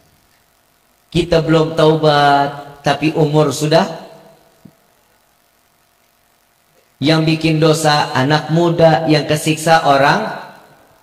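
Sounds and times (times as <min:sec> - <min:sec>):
room hiss: 0:00.0 - 0:11.0
man speaking over amplifier: 0:01.1 - 0:04.3, 0:07.0 - 0:10.7.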